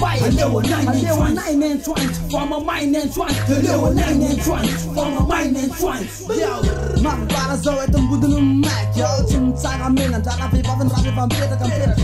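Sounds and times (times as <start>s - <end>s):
rapping over hip hop beat: 0.0s - 12.0s.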